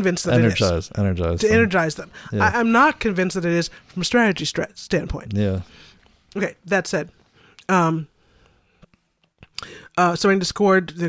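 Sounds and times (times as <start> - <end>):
person reading aloud: 0.0 - 3.6, 5.0 - 5.6.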